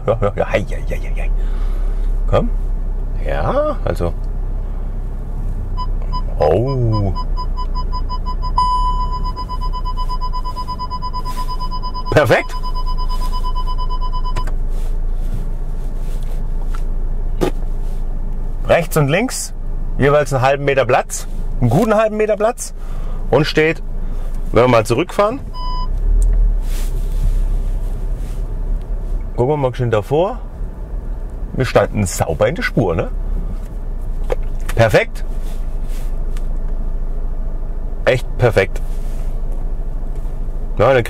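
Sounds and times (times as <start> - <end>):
car cabin rumble: 0.0 - 41.0
parking sensor beeps: 5.8 - 14.6, 25.5 - 26.0.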